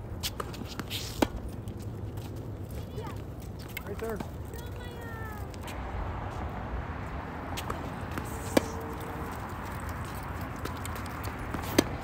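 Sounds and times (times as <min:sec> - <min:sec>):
tennis ball struck by racket: 0:07.5 - 0:09.2, 0:10.5 - 0:12.0.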